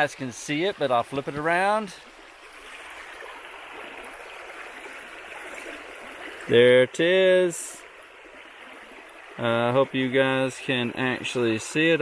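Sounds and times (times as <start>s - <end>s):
stream flowing over gravel: 0.0s - 12.0s.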